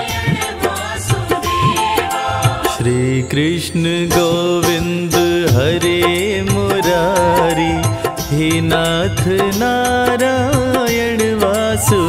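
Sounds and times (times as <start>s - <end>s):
devotional vocal melody: 0.0s - 12.0s.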